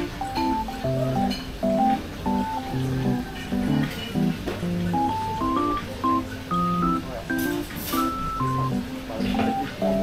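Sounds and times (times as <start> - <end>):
plucked guitar melody: 0.0 - 10.0.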